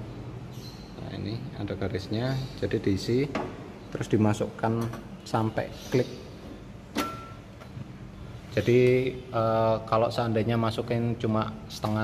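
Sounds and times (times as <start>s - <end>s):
water tank latching click: 6.9s - 7.7s.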